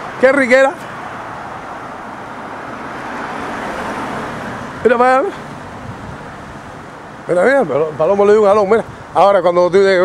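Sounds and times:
car passing by: 0.0s - 8.2s
road traffic: 0.0s - 10.0s.

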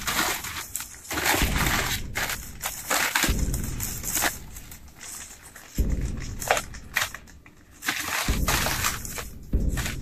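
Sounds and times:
packing paper crinkling: 0.0s - 10.0s.

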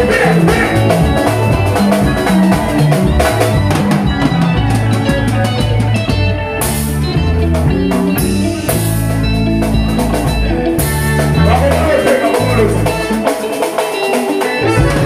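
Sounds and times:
dance band playing: 0.0s - 15.0s.

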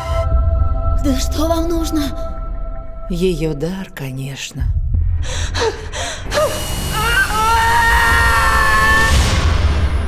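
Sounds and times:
woman gasping: 5.2s - 6.6s
woman screaming high-pitched: 6.5s - 9.2s.

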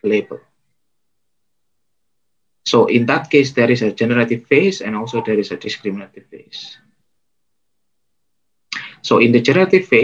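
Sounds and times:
man speaking: 0.0s - 0.6s, 2.6s - 6.9s, 8.7s - 10.0s.

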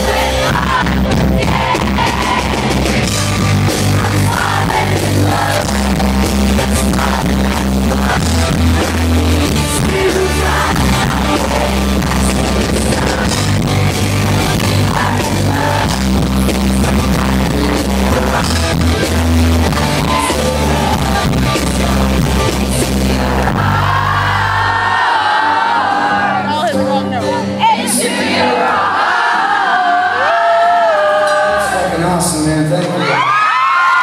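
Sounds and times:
drums: 0.0s - 25.0s
bass guitar: 0.0s - 25.1s
live rock band playing: 0.0s - 28.8s
acoustic guitar: 0.0s - 31.8s
singing voices: 0.0s - 34.0s.

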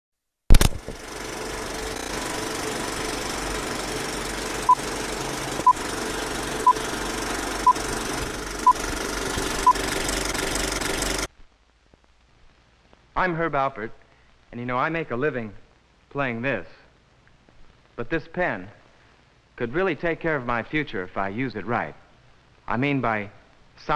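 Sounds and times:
sharp click: 0.5s - 1.0s
film projector rattling: 0.5s - 11.3s.

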